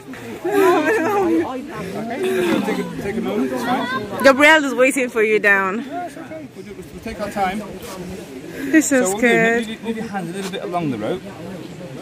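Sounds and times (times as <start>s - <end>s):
indistinct conversation: 0.0s - 12.0s.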